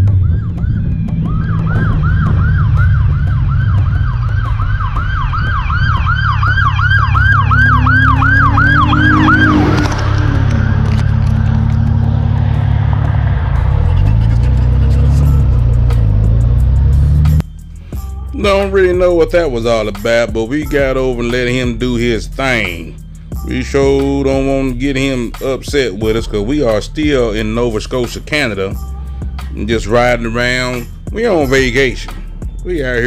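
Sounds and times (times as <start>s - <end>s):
police siren yelping: 0.0s - 14.1s
motorcycle engine: 0.0s - 18.1s, 20.8s - 25.5s.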